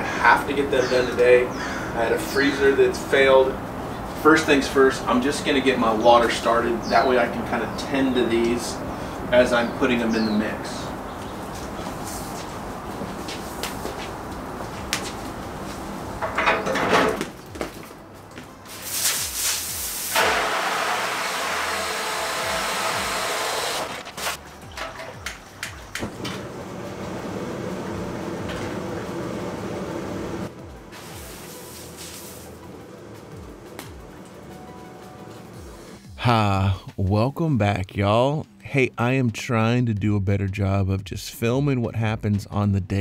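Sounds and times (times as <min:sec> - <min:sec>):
hose water rushing into metal tub: 0:18.8 - 0:23.8, 0:31.0 - 0:32.6.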